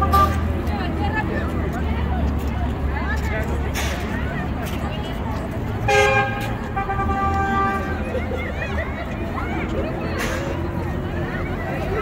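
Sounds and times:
people chattering: 0.0s - 12.0s
traffic rumble: 0.0s - 12.0s.

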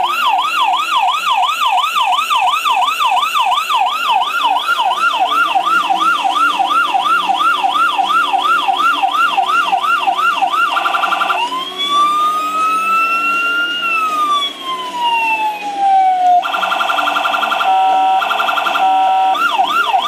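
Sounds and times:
toy electronic siren: 0.0s - 20.0s.

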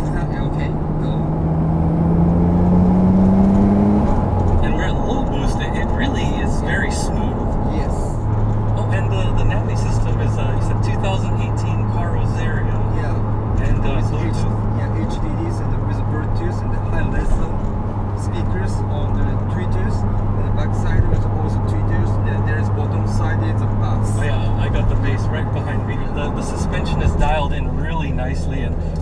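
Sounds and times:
car engine drone from inside cabin: 0.0s - 29.0s
road noise: 0.0s - 29.0s.

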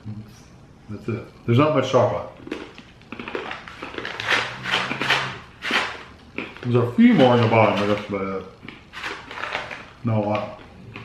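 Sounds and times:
low steady hum: 0.0s - 11.0s
plastic snack pouch crinkling: 2.4s - 11.0s.

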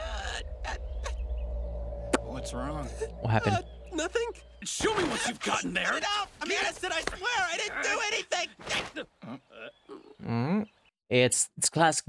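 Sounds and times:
steady held tone: 0.0s - 4.8s
constant low hum: 0.0s - 6.2s.

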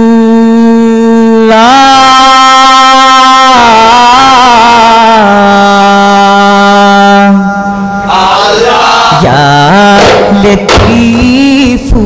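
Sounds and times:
man singing held note: 1.1s - 5.2s.

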